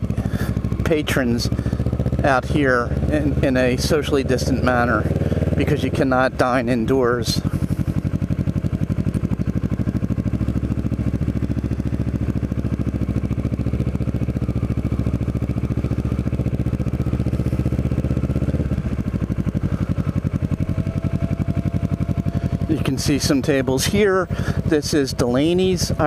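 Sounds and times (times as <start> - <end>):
motorcycle engine running: 0.0 - 26.0.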